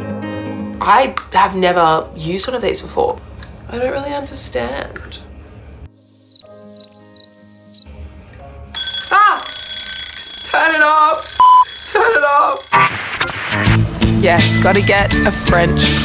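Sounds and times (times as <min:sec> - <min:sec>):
alarm clock ringing: 0:08.8 - 0:12.9.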